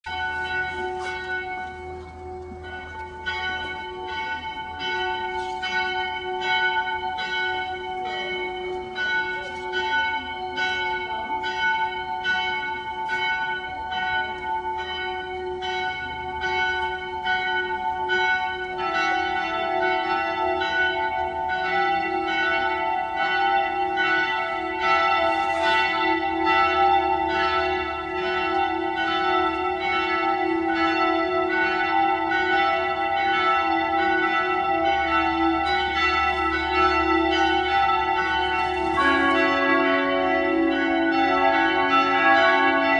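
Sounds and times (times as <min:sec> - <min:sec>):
bells ringing in a peal: 0:00.0 - 0:42.9.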